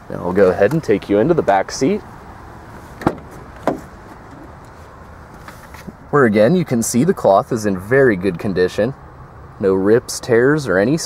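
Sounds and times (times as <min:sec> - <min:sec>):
low background noise: 0:00.0 - 0:11.0
car door handle and latch clicks: 0:03.0 - 0:04.6.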